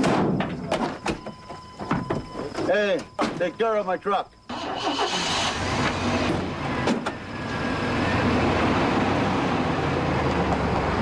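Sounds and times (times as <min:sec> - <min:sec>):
pickup truck engine driving off: 0:04.5 - 0:11.0.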